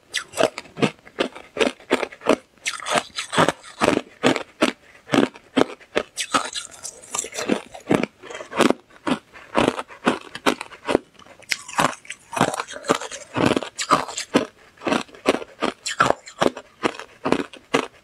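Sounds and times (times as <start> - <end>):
crushed ice being chewed: 0.1 - 18.0.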